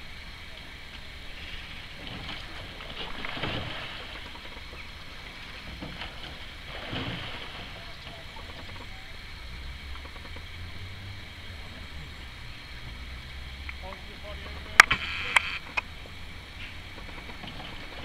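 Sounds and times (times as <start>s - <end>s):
outboard motor humming: 0.0s - 18.0s.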